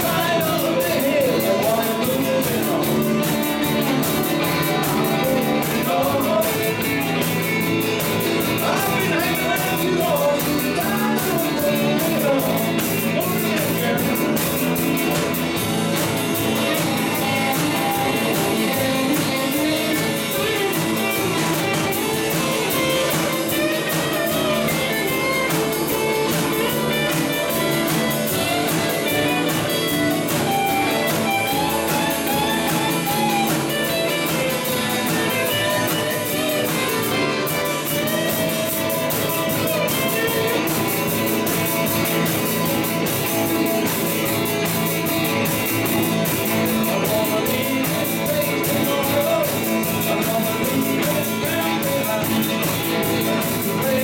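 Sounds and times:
live band playing: 0:00.0 - 0:54.0.

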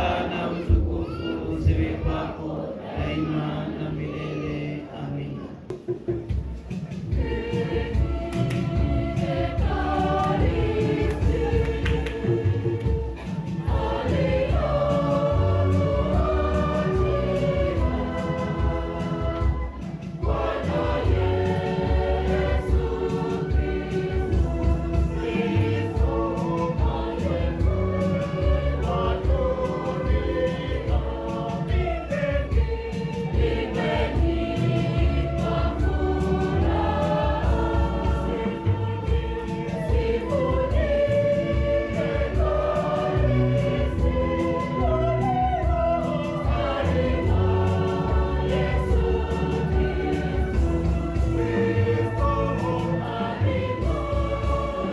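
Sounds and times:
church choir singing a hymn: 0:00.0 - 0:05.6, 0:06.6 - 0:54.9.

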